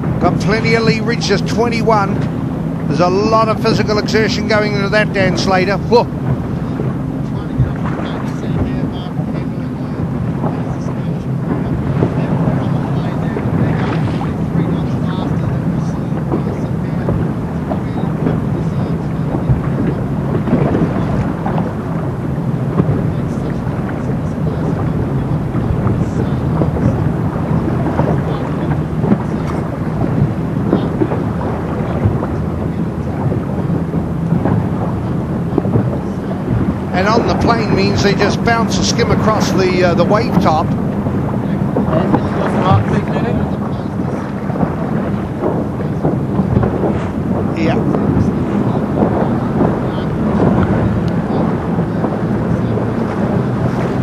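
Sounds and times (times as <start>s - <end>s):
low drone: 0.0s - 54.0s
water rushing: 0.0s - 54.0s
wind buffeting microphone: 0.0s - 54.0s.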